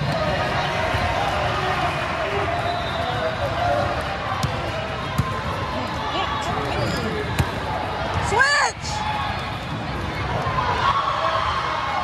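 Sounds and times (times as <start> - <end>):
murmur of many voices echoing: 0.0 - 11.0
basketball bouncing on court: 4.3 - 5.6.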